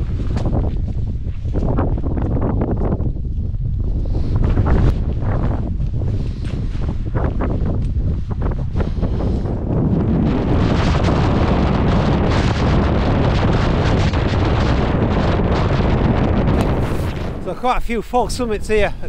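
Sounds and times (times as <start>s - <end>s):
gusting wind buffeting microphone: 0.0s - 19.0s.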